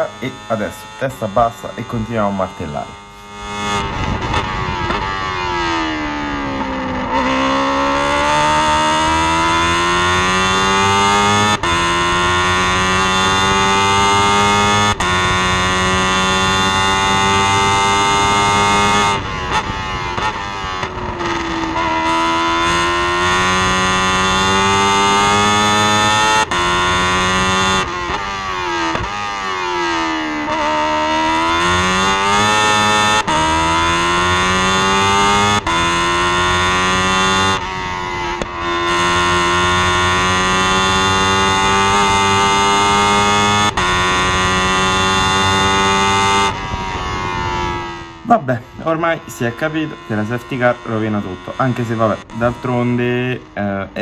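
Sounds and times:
racing car engine at high revs: 0.0s - 54.0s.

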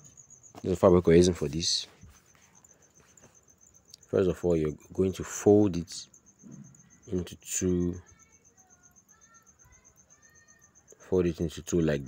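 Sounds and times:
person speaking: 0.6s - 2.5s.

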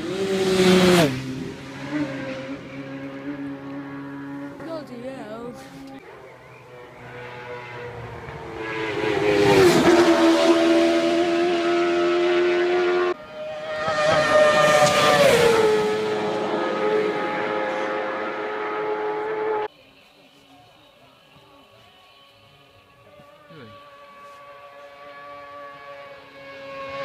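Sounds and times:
motorcycles passing at high speed: 0.0s - 19.7s, 22.8s - 27.0s.

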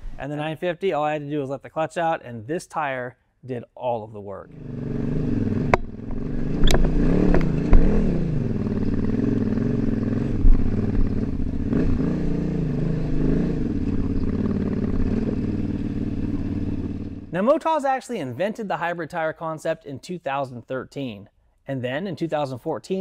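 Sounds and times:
motorcycle engine revving: 4.5s - 17.4s.

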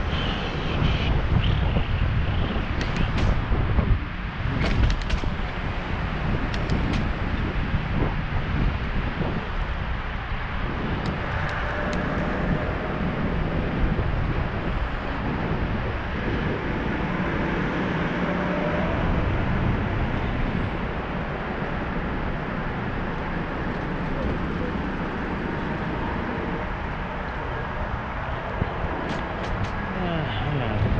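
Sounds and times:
tyre and road noise: 0.0s - 30.9s
wind rumbling on microphone: 0.0s - 30.9s.

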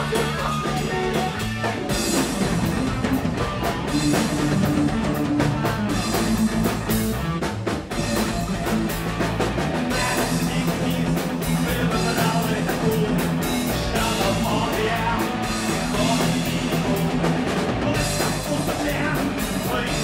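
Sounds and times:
drum kit: 0.0s - 20.0s
electric bass: 0.0s - 20.0s
electric guitar: 0.0s - 20.0s.

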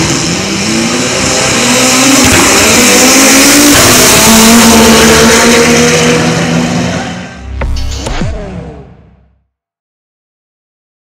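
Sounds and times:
drag car engines at full throttle: 0.0s - 9.4s.

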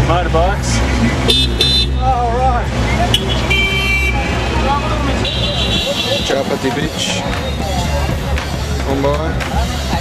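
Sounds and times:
traffic engines rumbling: 0.0s - 10.0s
car horn honking: 1.3s - 2.1s, 3.0s - 6.5s.

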